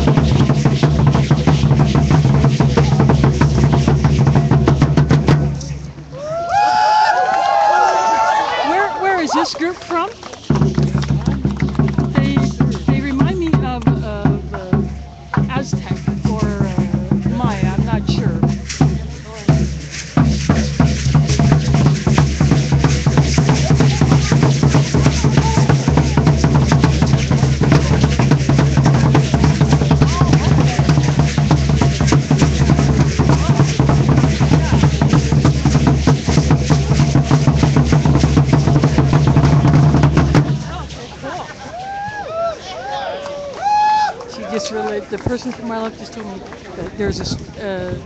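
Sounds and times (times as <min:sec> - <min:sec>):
drumming: 0:00.0 - 0:42.6, 0:43.4 - 0:48.0.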